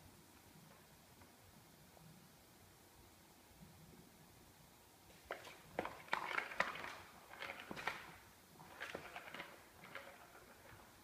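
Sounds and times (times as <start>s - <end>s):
plastic cat toy rattling: 5.8s - 11.0s.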